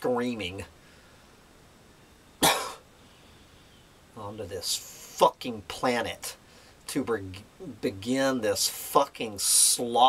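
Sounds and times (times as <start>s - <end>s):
man coughing: 2.4s - 2.8s.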